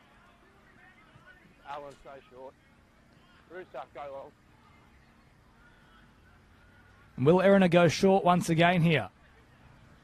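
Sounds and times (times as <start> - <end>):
faint high-pitched tones: 0.0 - 7.4.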